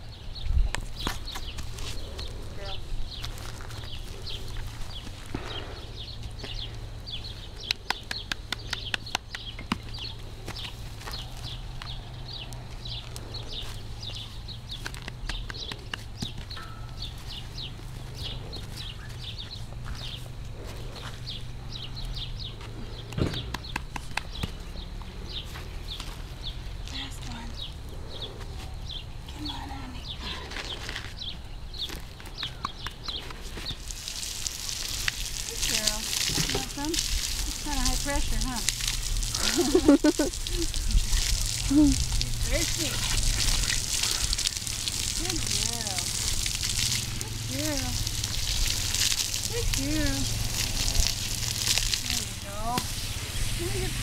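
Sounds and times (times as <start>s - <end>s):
garden hose spraying water: 0.3s - 54.0s.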